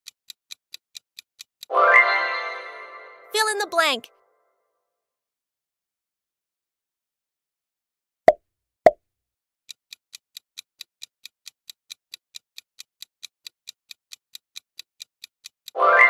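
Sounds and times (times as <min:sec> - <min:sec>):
countdown timer ticking: 0:00.5 - 0:04.1.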